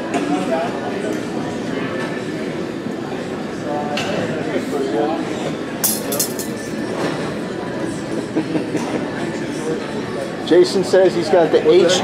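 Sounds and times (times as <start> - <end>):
busy gym rumble: 0.0 - 12.0.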